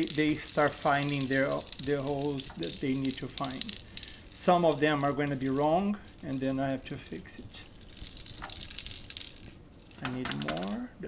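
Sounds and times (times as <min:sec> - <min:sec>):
capsules rattling on plastic tray: 0:00.0 - 0:10.9.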